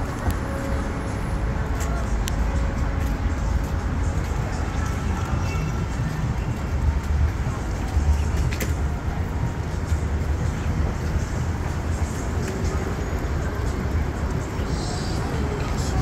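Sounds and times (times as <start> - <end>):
street noise: 0.0 - 16.0
traffic rumble: 0.0 - 16.0.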